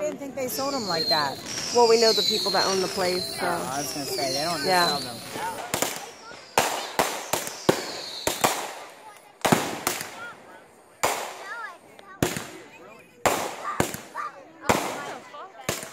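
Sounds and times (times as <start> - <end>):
fireworks bangs: 0.0 - 15.9
firework whistle falling: 0.4 - 8.6.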